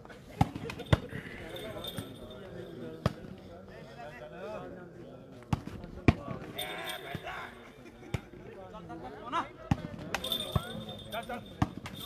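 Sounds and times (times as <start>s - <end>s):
murmur of spectators' voices: 0.0s - 12.0s.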